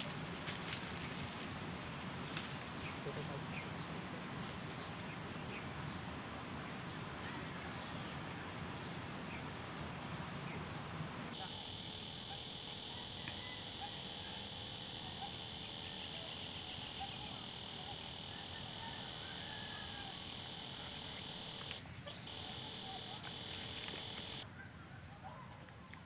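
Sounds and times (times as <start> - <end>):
high-pitched insect drone: 11.4 - 24.4.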